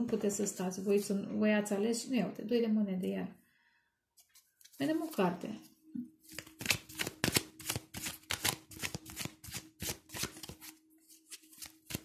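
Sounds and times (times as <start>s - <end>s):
cards being shuffled by hand: 6.3s - 12.0s.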